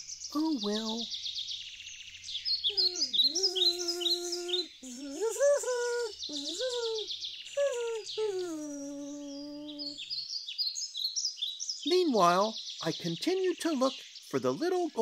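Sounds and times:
recorded birdsong chirping: 0.0 - 15.0
person humming: 2.7 - 10.0.

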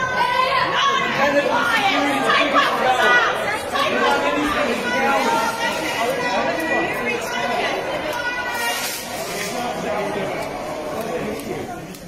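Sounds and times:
crowd of voices talking: 0.0 - 12.0.

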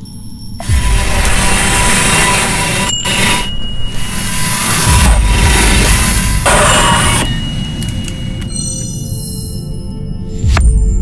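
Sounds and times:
loud rushing roar: 0.6 - 7.3.

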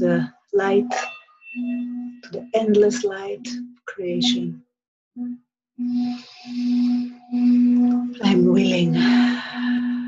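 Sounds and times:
singing bowl hum: 0.0 - 4.6, 5.2 - 10.0
wooden stick rubbing bowl rim: 5.8 - 10.0.

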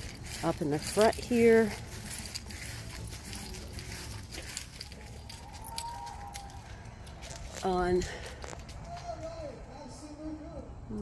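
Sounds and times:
light clicks and crackles: 0.0 - 9.4.

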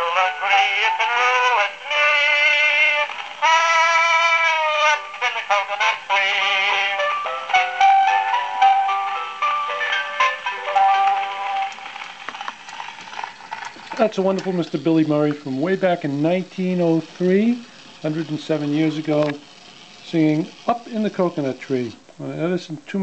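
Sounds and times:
male tenor singing: 0.0 - 7.1
instrumental accompaniment: 1.7 - 21.7
record surface crackle: 10.1 - 23.0.

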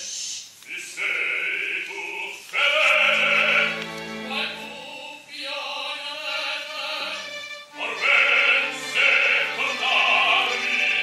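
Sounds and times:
operatic singing voice: 0.7 - 11.0.

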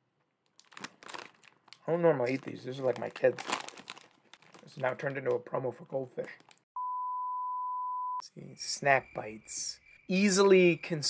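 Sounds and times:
crackers crunching: 0.3 - 5.5, 6.1 - 6.6
plastic bag crinkling: 0.4 - 5.5.

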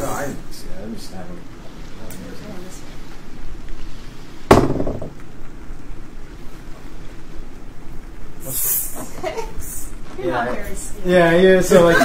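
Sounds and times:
low background ambience: 0.0 - 12.0.

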